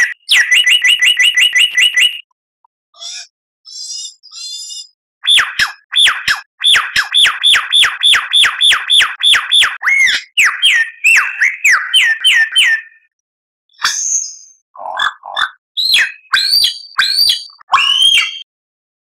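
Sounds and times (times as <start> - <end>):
lyrebird song: 0.0 - 2.3, 3.0 - 13.1, 13.7 - 18.5.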